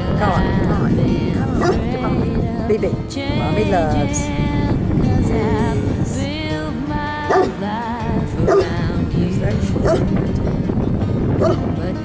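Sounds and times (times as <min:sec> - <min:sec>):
background music with singing: 0:00.0 - 0:12.0
dog barking: 0:01.6 - 0:01.8, 0:07.3 - 0:07.6, 0:08.5 - 0:08.7, 0:09.8 - 0:10.0, 0:11.4 - 0:11.6.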